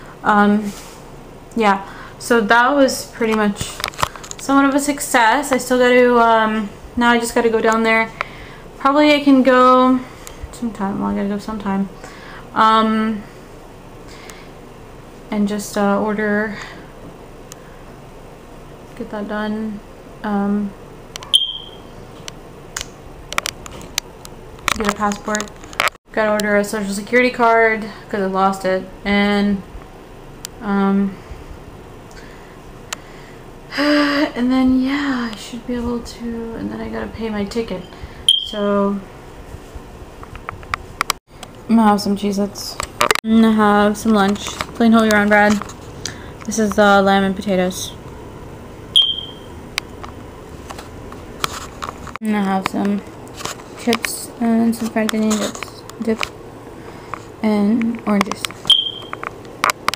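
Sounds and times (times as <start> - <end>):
short high-pitched tone: 21.3 - 21.8, 38.3 - 38.6, 49.0 - 49.5, 58.7 - 59.1.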